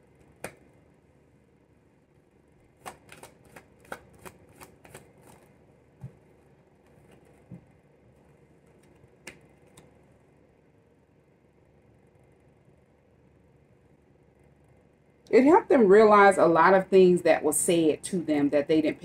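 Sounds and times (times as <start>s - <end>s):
cards being shuffled: 2.7s - 9.9s.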